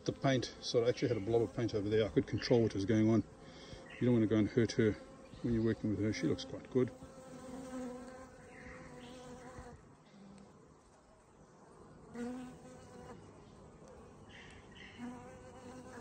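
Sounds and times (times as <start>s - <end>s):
bees buzzing: 0.8s - 9.8s, 12.0s - 13.3s, 14.2s - 16.0s.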